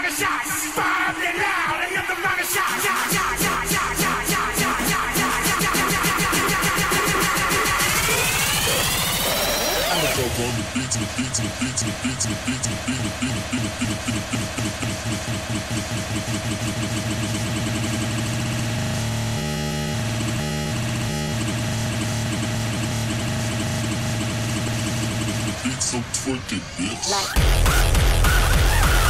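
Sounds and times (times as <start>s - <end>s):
distorted synth wash: 0.0s - 29.0s
fast pulsing synth pattern: 2.6s - 29.0s.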